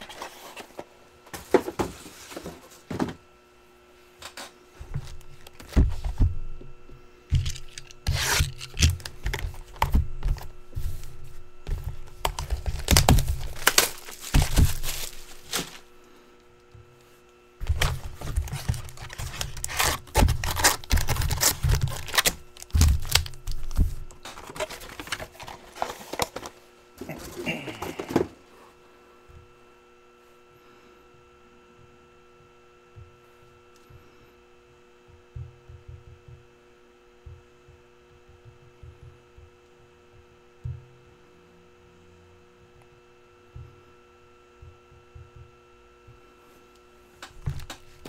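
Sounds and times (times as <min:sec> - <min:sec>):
low steady hum: 0:00.0 - 0:48.0
packs knocking on table: 0:07.3 - 0:07.8, 0:11.7 - 0:15.8
plastic wrap crinkling: 0:07.3 - 0:09.8, 0:11.9 - 0:15.9, 0:17.6 - 0:26.6
cardboard handled: 0:07.3 - 0:15.9, 0:17.6 - 0:28.4.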